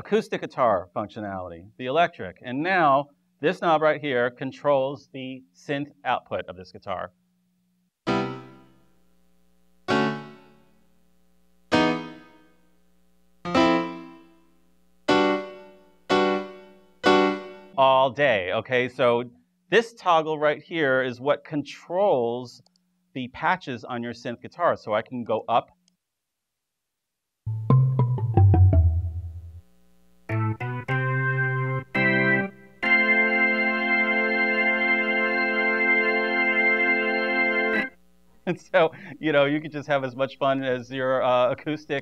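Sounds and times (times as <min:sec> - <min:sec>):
deep bass tone: 0:27.5 - 0:29.6
synthesized piano-like chord: 0:27.5 - 0:29.6.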